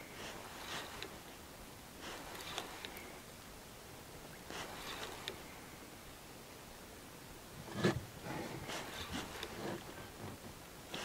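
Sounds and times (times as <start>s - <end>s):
light rustling: 4.4s - 5.5s, 7.6s - 11.0s.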